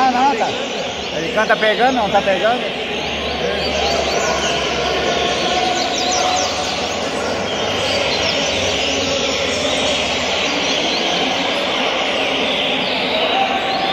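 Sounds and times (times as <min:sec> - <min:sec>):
birds chirping and trilling: 0:00.0 - 0:13.9
steady background noise: 0:00.0 - 0:13.9.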